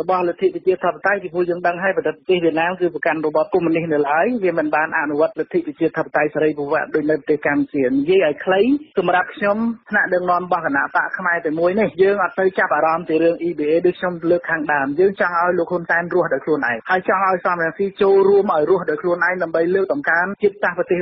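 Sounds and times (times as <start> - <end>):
person narrating news: 0.0 - 21.0.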